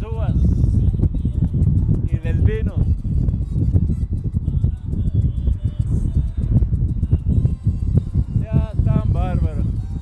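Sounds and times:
wind buffeting the microphone: 0.0s - 10.0s.

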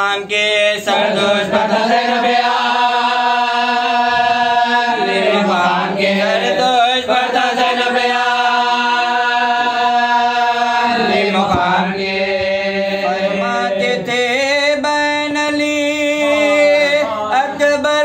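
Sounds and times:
men chanting together: 0.0s - 18.0s.

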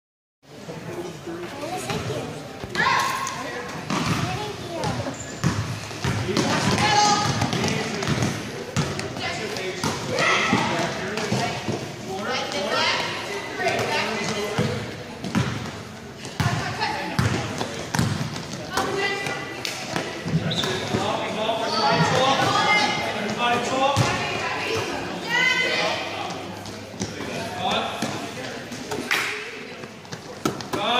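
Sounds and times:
people talking and calling out: 0.5s - 30.9s
basketball bouncing on court: 3.9s - 9.2s, 13.7s - 20.8s.

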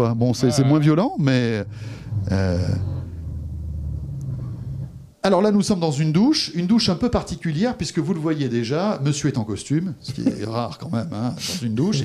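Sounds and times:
low rumble from speakers: 1.2s - 5.2s.

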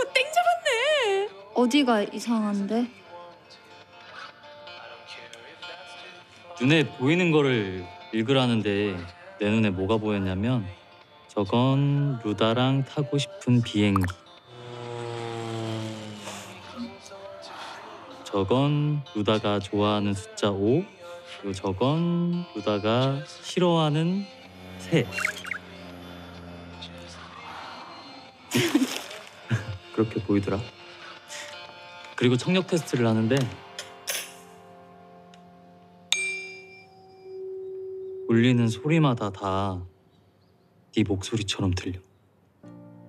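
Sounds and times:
propeller airplane engine drone: 24.4s - 27.8s
tuning fork ringing: 36.1s - 39.5s.

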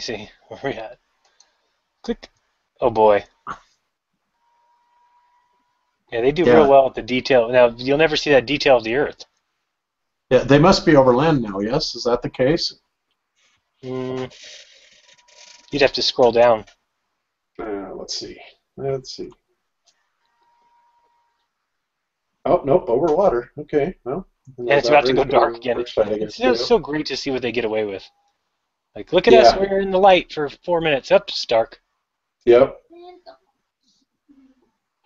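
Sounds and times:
faint steady tone: 0.0s - 12.8s, 17.5s - 31.6s.

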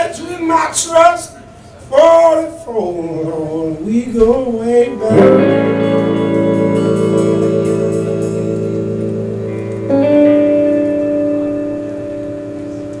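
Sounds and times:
guitars ringing held chords: 5.0s - 13.0s
guitar chord with upward slide: 5.1s - 13.0s.

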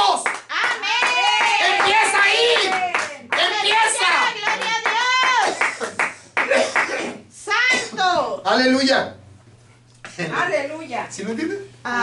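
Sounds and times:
hand claps: 0.0s - 7.1s.

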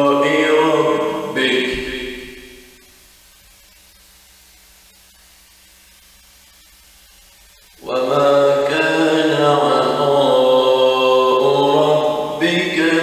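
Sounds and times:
man reciting melodically: 0.0s - 2.4s, 7.8s - 13.0s.

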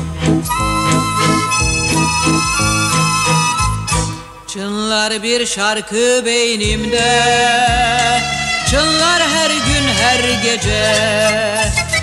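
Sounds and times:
pulsing bass and chords: 0.0s - 4.4s
reedy melody line: 0.2s - 4.6s.

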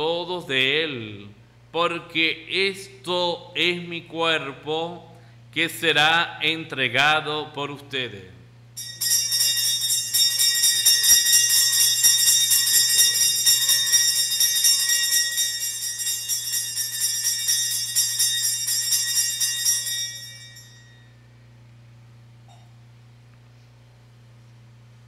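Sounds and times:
altar bells ringing rapidly: 8.8s - 21.2s.

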